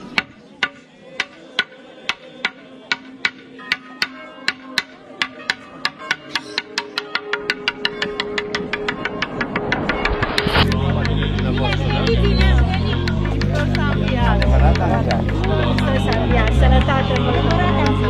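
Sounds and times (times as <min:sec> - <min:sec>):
held low tone: 0:07.6 - 0:17.8.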